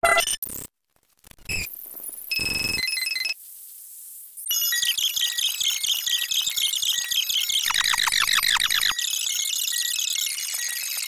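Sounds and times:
electronic ringtone melody: 4.7 - 11.0.

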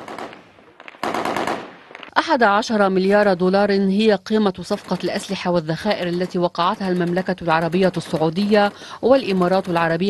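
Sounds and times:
automatic gunfire: 0.0 - 2.1.

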